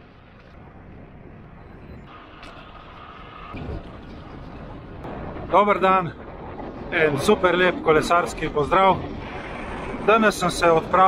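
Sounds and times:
bike tyres rolling on asphalt: 0:00.0 - 0:11.0
wind noise: 0:00.0 - 0:11.0.

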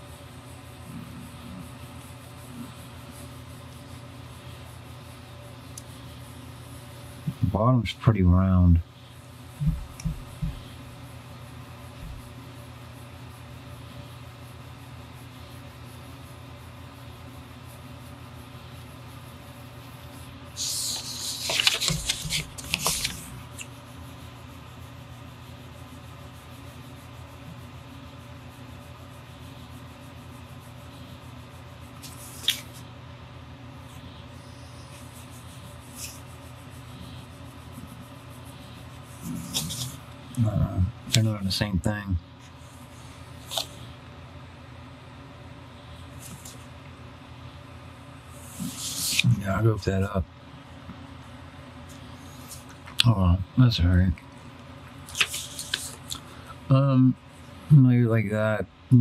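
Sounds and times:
low background hum: 0:00.0 - 0:59.0
scratchy rustle: 0:20.6 - 0:32.9, 0:34.0 - 0:40.2, 0:48.4 - 0:49.5, 0:55.0 - 0:56.3.

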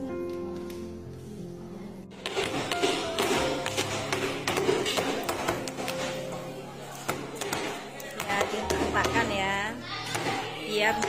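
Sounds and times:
background music: 0:00.0 - 0:11.0
metal baking pans knocked on table: 0:02.2 - 0:06.1.

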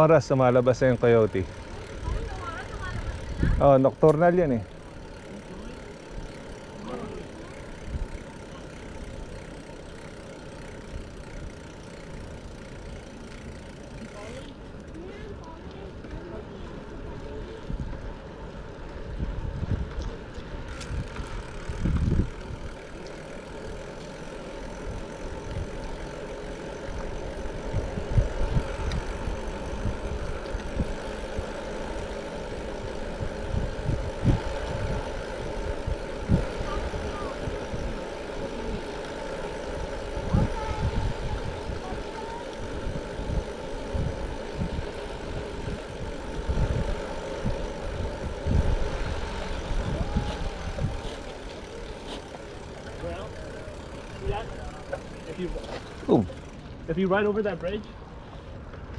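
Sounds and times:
tyres rolling on pavement: 0:00.0 - 0:58.9
wind buffeting microphone: 0:01.4 - 0:03.8, 0:16.6 - 0:52.8.

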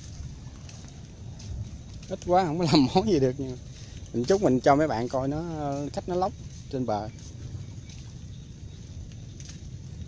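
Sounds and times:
light rain on leaves: 0:00.0 - 0:10.0
low rumble: 0:00.0 - 0:10.0.

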